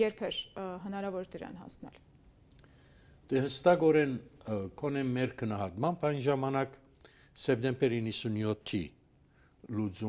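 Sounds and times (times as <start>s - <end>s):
woman speaking: 0.0s - 2.0s.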